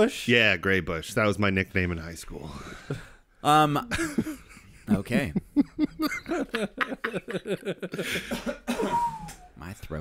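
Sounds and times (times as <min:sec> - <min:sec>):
man laughing: 0:03.8 - 0:08.8
man coughing: 0:08.0 - 0:09.1.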